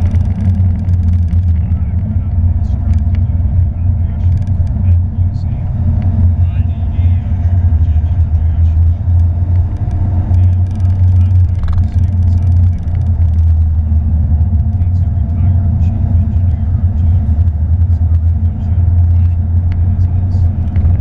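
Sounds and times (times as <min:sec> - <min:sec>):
car engine low rumble: 0:00.0 - 0:21.0
road noise inside car: 0:00.0 - 0:21.0.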